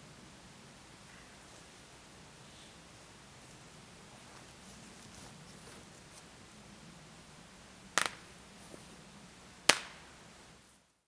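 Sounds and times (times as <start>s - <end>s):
sharp slaps: 8.0s - 8.3s, 9.7s - 10.1s.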